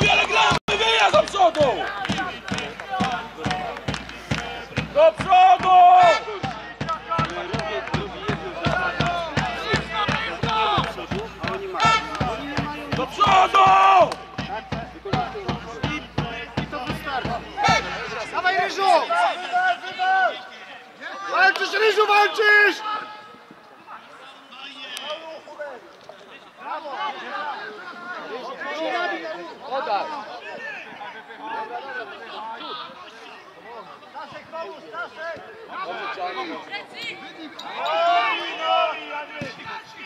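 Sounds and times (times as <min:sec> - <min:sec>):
crowd chanting: 0:00.0 - 0:20.6
regular drum beat: 0:06.9 - 0:18.0.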